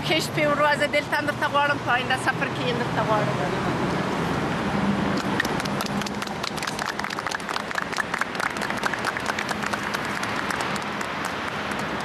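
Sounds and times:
people clapping: 0:05.2 - 0:12.0.

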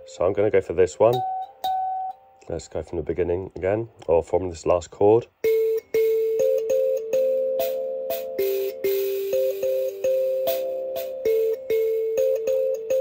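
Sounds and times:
thumb piano plucked notes: 0:01.0 - 0:02.2, 0:05.4 - 0:13.0.

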